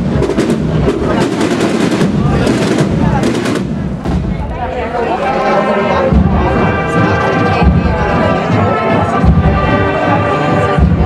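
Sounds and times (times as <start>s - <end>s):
brass band playing a march: 0.0s - 11.0s
heavy drum beats: 0.0s - 11.0s.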